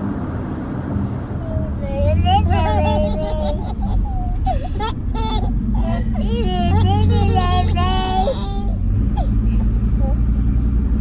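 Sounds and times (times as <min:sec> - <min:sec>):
diesel engine drone from cab: 0:00.0 - 0:11.0
child's wavering voice: 0:01.4 - 0:04.4, 0:05.8 - 0:08.8.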